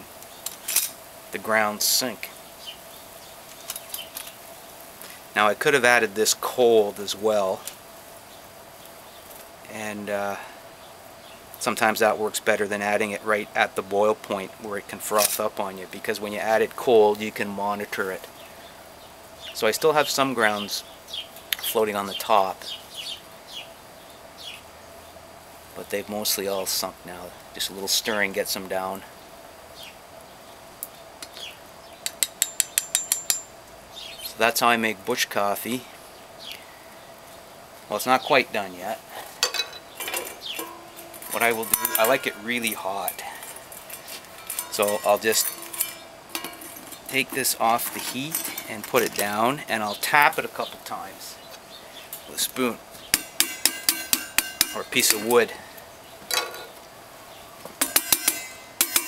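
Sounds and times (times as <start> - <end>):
metal spoon clinking on pot: 39.4 - 49.2, 53.2 - 55.3, 57.8 - 59.0
handling clatter: 39.4 - 49.4, 57.8 - 59.0.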